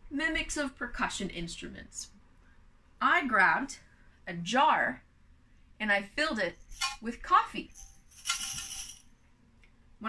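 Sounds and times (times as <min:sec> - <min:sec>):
coffee beans rattling in jar: 0:07.6 - 0:09.2.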